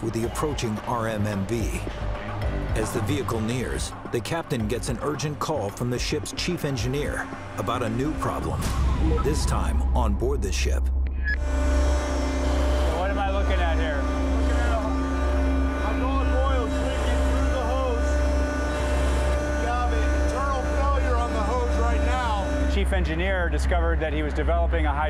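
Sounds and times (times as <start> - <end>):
man talking: 0.0 - 1.9, 2.7 - 10.9, 12.9 - 15.0, 15.8 - 18.1, 19.6 - 25.0
machinery humming: 0.0 - 25.0.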